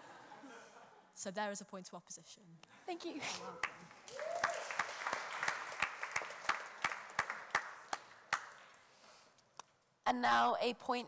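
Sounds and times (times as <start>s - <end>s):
audience applauding: 3.6s - 8.9s.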